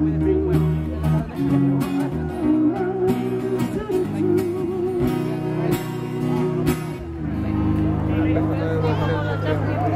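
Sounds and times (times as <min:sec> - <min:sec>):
voices talking: 0:00.0 - 0:09.9.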